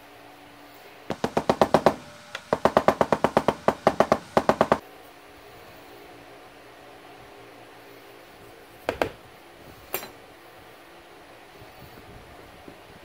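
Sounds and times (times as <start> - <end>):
mallet tapping metal plate: 1.1 - 4.8.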